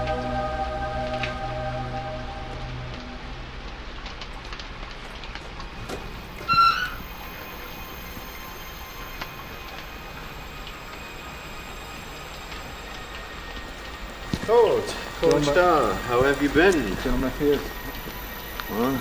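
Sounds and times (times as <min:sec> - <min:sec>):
rain hissing: 0:00.0 - 0:19.0
loud high-pitched squeal: 0:05.7 - 0:19.0.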